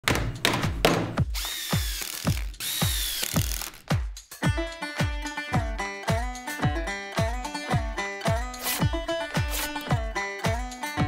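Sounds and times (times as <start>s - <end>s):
music with bass beat: 0.2s - 11.0s
power drill whining: 1.4s - 3.8s.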